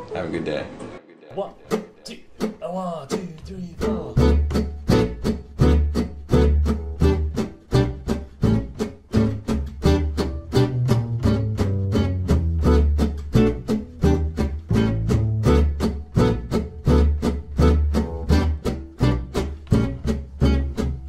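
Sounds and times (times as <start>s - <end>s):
acoustic guitar strumming chords: 1.4s - 21.0s
steady bass line: 3.8s - 21.0s.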